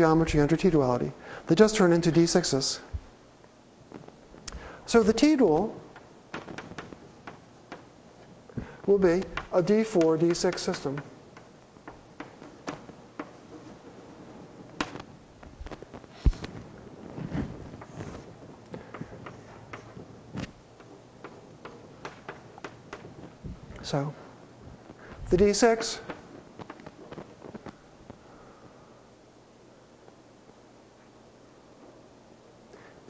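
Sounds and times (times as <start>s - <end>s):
man's voice: 8.9s - 11.0s, 25.2s - 26.1s
chalk tapping on blackboard: 9.2s - 13.4s.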